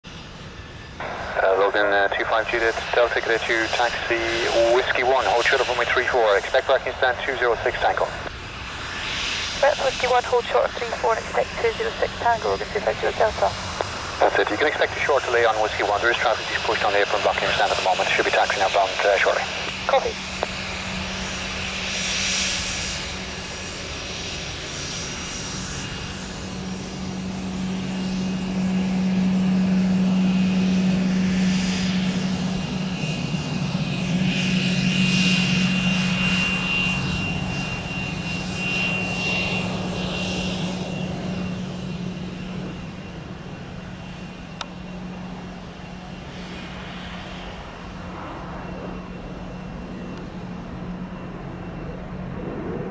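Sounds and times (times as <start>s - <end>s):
high jet whine: 0.1s - 52.9s
jet engines droning: 0.1s - 52.9s.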